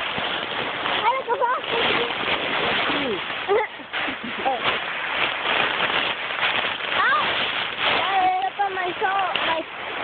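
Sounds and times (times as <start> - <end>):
dry leaves rustling on microphone: 0.0 - 10.0.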